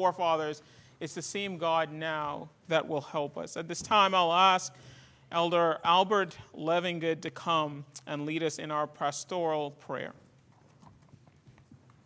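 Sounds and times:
faint footsteps: 10.0s - 12.0s.

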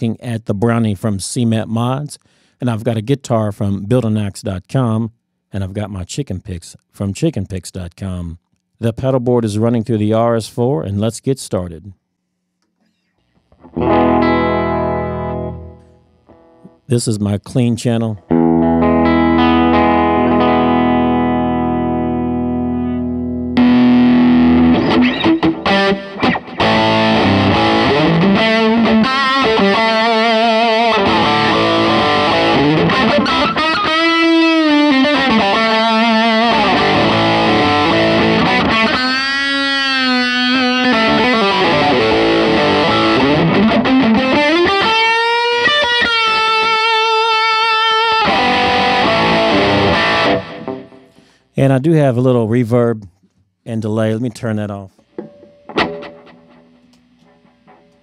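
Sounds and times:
distorted electric guitar lead: 13.5s - 16.9s, 18.2s - 51.4s, 55.2s - 58.0s
clean electric guitar chord: 13.7s - 16.5s, 18.3s - 39.2s, 39.9s - 45.0s, 45.8s - 51.2s.

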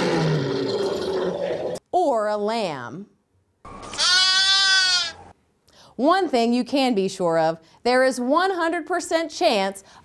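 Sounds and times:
lion roaring: 0.0s - 1.8s.

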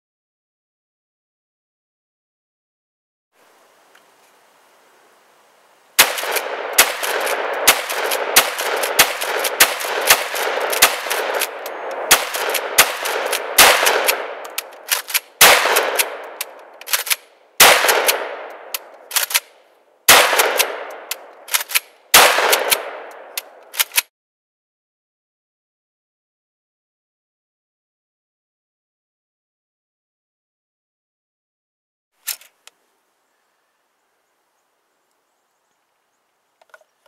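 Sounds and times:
shotgun shots echoing: 6.0s - 19.5s, 20.1s - 24.0s.

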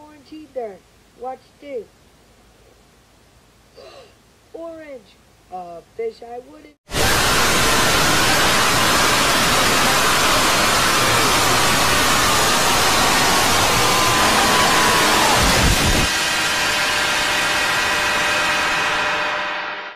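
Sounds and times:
loud hiss: 6.9s - 19.0s
ringing chord of steady tones: 16.0s - 19.9s.

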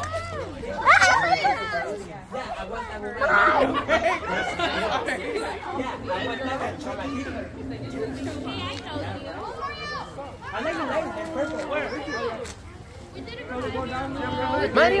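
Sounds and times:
people chattering: 0.0s - 15.0s
low hum: 3.1s - 11.1s.

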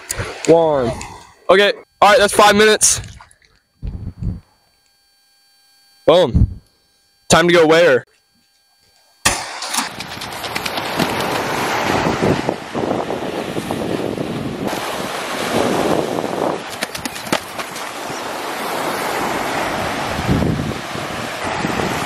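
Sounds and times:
small waves washing up beach: 9.4s - 22.0s
wind buffeting microphone: 9.9s - 18.3s, 19.2s - 22.0s.

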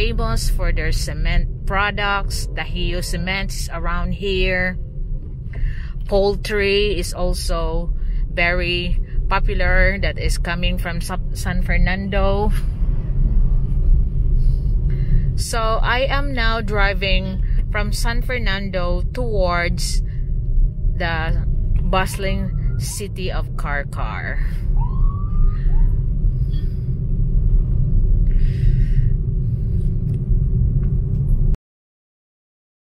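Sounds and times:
car driving rumble: 0.0s - 31.6s.

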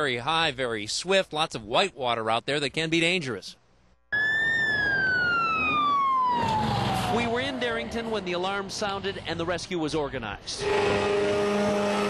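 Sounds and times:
fire truck siren wailing: 4.1s - 8.8s, 10.6s - 12.0s.

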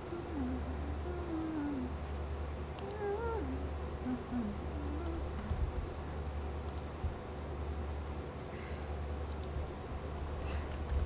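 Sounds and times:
steady low hum: 0.0s - 11.0s
faint clicks: 2.8s - 3.0s, 6.7s - 6.9s, 9.3s - 9.6s.

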